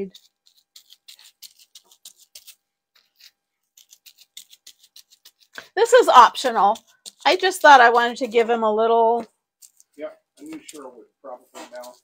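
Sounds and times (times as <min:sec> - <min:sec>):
bubble wrap crinkling and tapping: 0:00.0 - 0:08.6, 0:09.2 - 0:10.9, 0:11.5 - 0:12.0.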